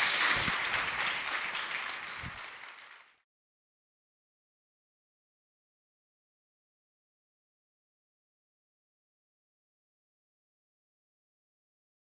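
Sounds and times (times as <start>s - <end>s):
audience applauding: 0.0s - 3.2s.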